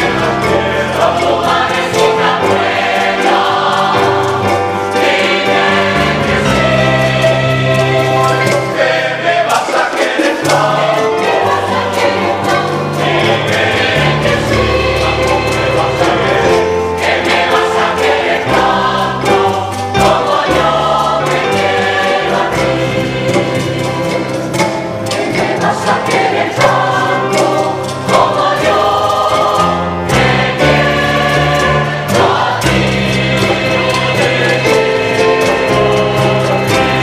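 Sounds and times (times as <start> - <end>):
mixed choir singing: 0.0 - 37.0.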